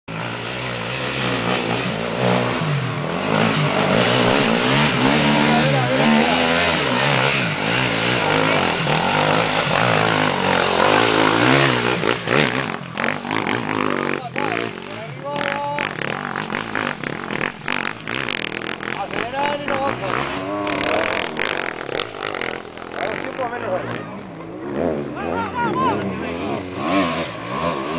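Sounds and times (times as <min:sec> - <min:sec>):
motorcycle engine revving: 0:00.1 - 0:27.9
people's voices: 0:04.4 - 0:11.8, 0:14.0 - 0:16.5, 0:18.8 - 0:21.5, 0:22.4 - 0:26.8.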